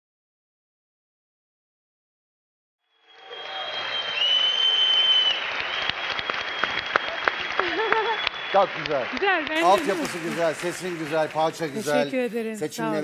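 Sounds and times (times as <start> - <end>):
high whistle: 3.0 - 8.7
audience applauding: 3.1 - 12.2.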